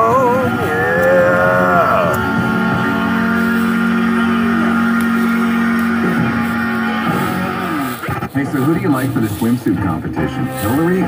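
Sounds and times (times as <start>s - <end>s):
vehicle noise: 0.0s - 11.0s
harmonica chord: 2.1s - 8.1s, 10.2s - 11.0s.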